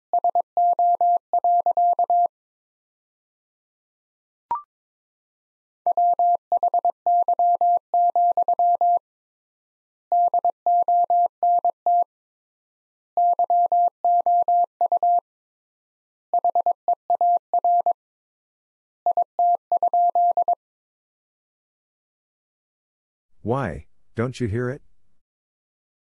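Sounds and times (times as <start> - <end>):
morse code beeps: 5.9 - 9.0, 13.2 - 15.2, 19.1 - 20.6.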